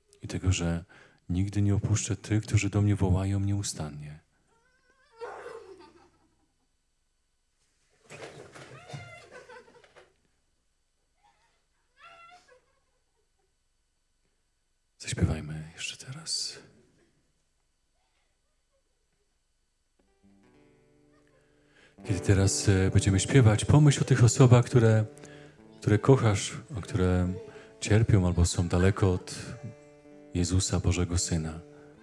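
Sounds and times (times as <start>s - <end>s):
speech: 0.2s - 4.2s, 15.0s - 16.7s, 22.0s - 25.1s, 25.8s - 29.7s, 30.4s - 31.6s
faint guitar chord ringing: 20.0s - 32.0s.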